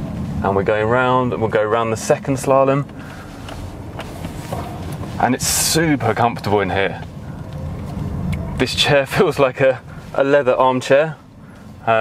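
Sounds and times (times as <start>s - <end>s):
tyre and road noise: 0.0s - 12.0s.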